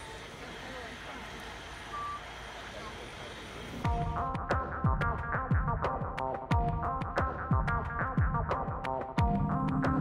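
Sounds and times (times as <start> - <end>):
electronic music with deep bass: 3.8 - 10.0.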